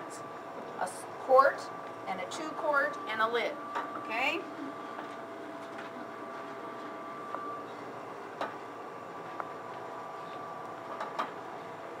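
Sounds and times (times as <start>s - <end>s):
kitchen room hum: 0.0s - 12.0s.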